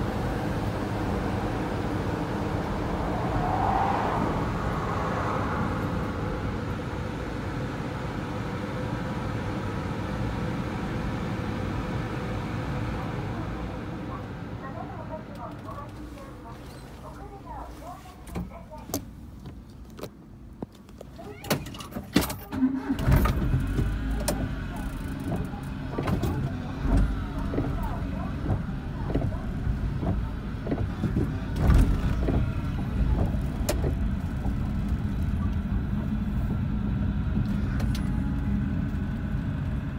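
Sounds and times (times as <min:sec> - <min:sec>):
van engine starting and running: 0:00.0 - 0:39.9
windshield wipers sweeping: 0:22.8 - 0:35.6.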